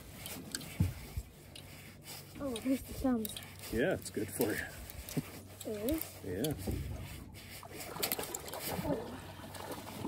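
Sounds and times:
faint rubbing: 0:00.0 - 0:08.0.

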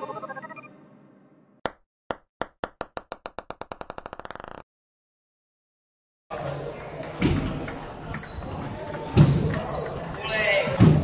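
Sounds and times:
table tennis ball bouncing: 0:01.7 - 0:04.6.

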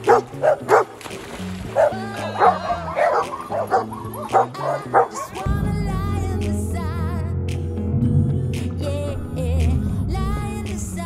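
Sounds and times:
dogs barking: 0:00.0 - 0:01.0, 0:01.6 - 0:05.6
background music: 0:00.0 - 0:11.0.

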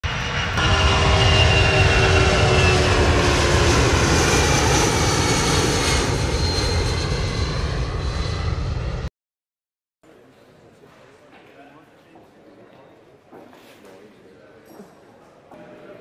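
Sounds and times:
jet aircraft flying past: 0:00.0 - 0:09.1.

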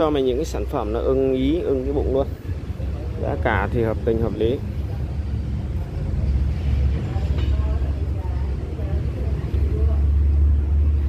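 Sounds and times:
faint voices: 0:00.0 - 0:11.0
vehicle engine rumbling: 0:00.0 - 0:11.0.

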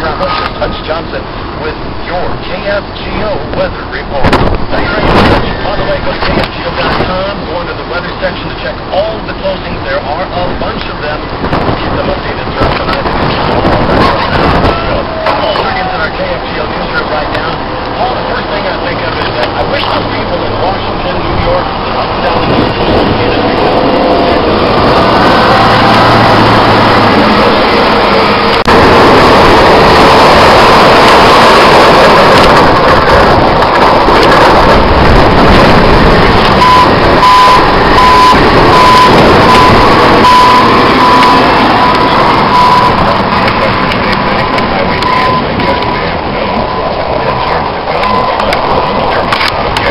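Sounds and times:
blowing wind: 0:00.0 - 0:49.9
heavy diesel machinery running: 0:00.0 - 0:49.9
backup alarm beeping: 0:36.5 - 0:43.7, 0:44.4 - 0:46.0.

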